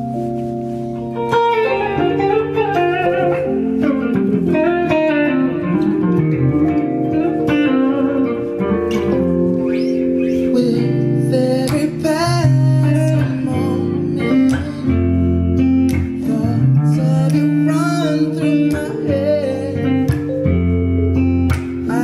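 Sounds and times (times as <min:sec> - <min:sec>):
clean electric guitar chords: 0:00.0 - 0:22.0.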